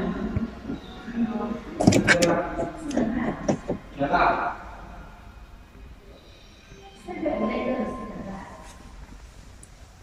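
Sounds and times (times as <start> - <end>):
people talking: 0.0 - 4.6, 6.8 - 8.8.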